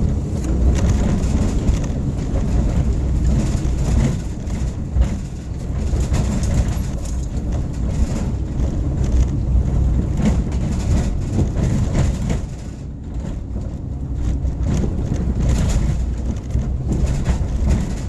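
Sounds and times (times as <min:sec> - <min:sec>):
knocks and rattles from bumps: 0:00.0 - 0:18.0
road and engine rumble: 0:00.0 - 0:18.0.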